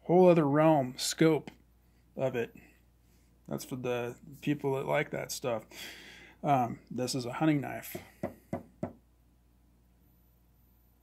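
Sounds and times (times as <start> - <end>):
taps on wooden tabletop: 7.9 - 9.0.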